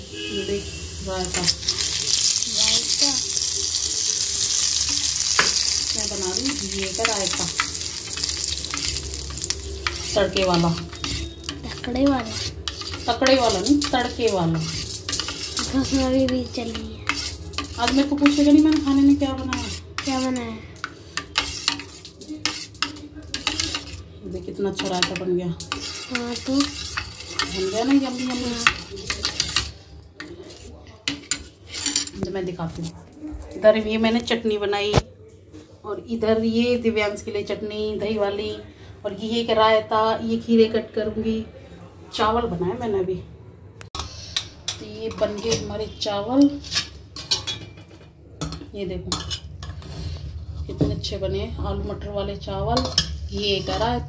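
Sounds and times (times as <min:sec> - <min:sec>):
metal spoon scraping a pot: 0:00.1 - 0:33.0, 0:44.0 - 0:51.0, 0:52.3 - 0:54.0.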